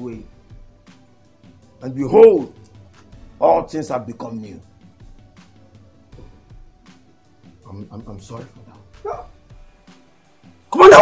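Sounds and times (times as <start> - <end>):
faint background music: 0.0 - 11.0
man shouting: 9.0 - 9.3, 10.7 - 11.0.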